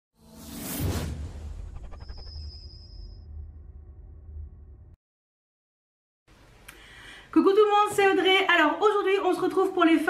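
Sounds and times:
whoosh sound effect: 0.3 - 3.3
deep rumble: 1.1 - 5.0.

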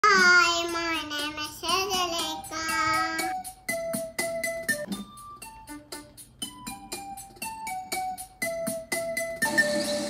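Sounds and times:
child singing: 0.0 - 3.4
keyboard melody: 0.2 - 10.0.

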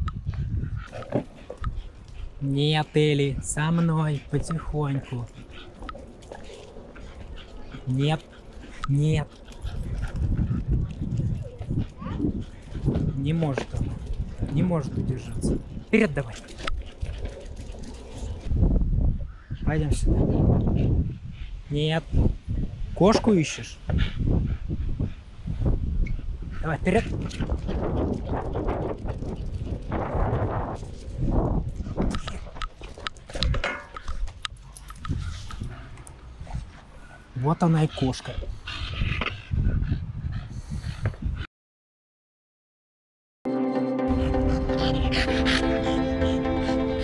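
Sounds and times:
longboard wheels rolling on asphalt: 5.4 - 13.0, 15.6 - 18.5, 27.2 - 33.4.

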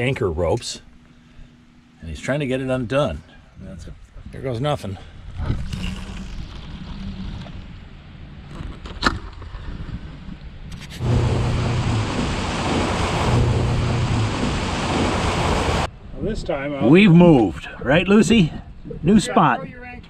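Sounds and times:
boat motor running: 10.8 - 15.9
churning water: 10.9 - 15.9
wind rushing: 11.0 - 15.9.

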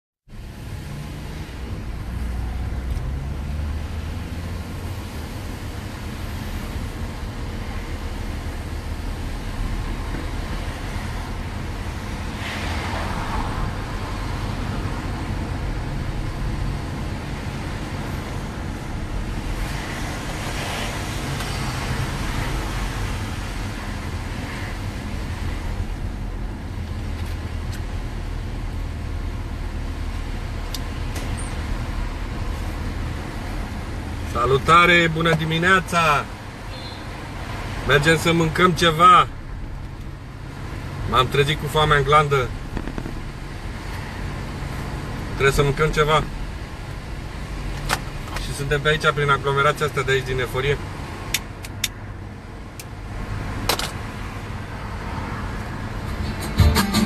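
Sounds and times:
car engine and tyre drone: 0.3 - 57.0.

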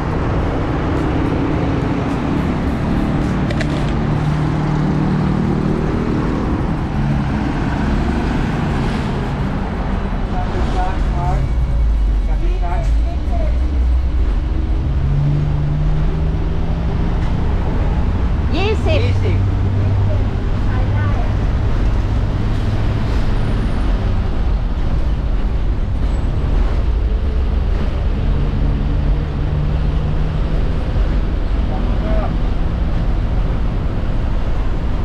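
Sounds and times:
cars and trucks passing: 0.0 - 35.0
heavy engine drone: 0.0 - 35.0.

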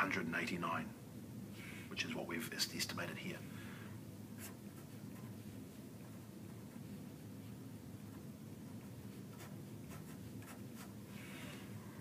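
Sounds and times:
low steady hum: 0.0 - 12.0
pen scratching on paper: 8.1 - 11.0.

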